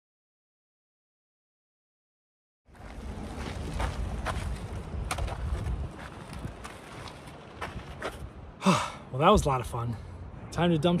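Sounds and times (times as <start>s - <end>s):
movement on gravel: 2.7s - 8.3s
wind rumbling on microphone: 2.7s - 8.6s.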